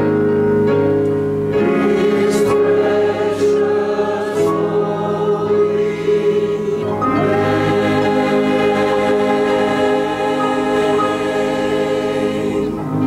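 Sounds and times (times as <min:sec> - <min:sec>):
choir singing: 0:01.6 - 0:13.0.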